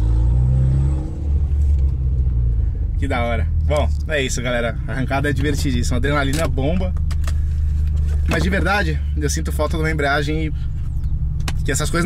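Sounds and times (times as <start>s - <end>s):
car engine running at low revs: 0.0s - 12.0s.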